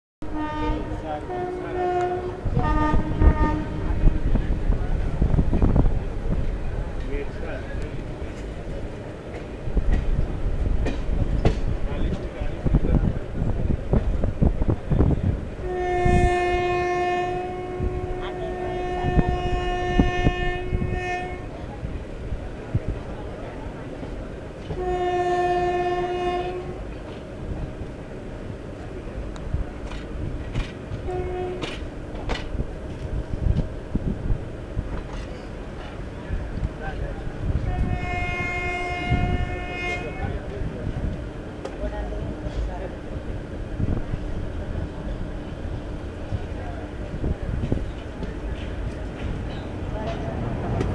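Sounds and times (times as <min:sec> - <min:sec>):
train horn blast: 0:00.2 - 0:04.4, 0:15.6 - 0:21.6, 0:24.7 - 0:26.9, 0:31.0 - 0:31.8, 0:37.6 - 0:40.5
passenger coach rumble: 0:00.4 - 0:50.9
wheels clicking on rail joints: 0:29.1 - 0:33.7, 0:34.8 - 0:42.8, 0:44.7 - 0:50.9.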